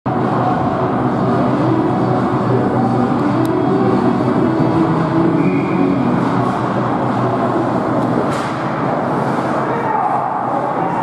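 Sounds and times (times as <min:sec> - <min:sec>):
ice rink crowd din: 0:00.1 - 0:11.0.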